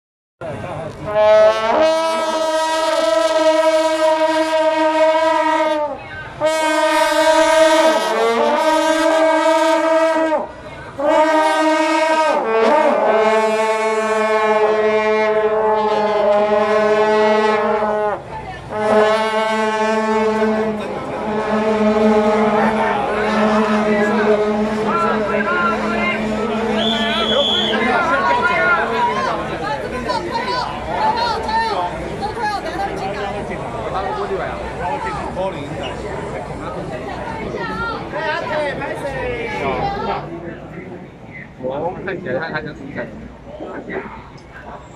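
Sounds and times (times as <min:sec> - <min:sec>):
crowd chatter: 0:00.4 - 0:44.9
long horns blowing held notes: 0:01.0 - 0:29.6.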